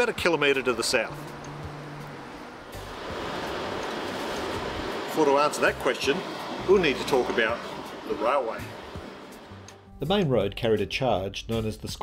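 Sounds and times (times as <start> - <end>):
outdoor background rush: 0.0 - 9.8.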